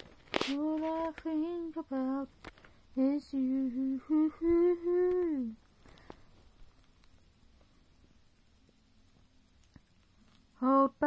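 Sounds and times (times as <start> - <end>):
person singing unaccompanied: 0.4 - 5.6, 10.5 - 11.0.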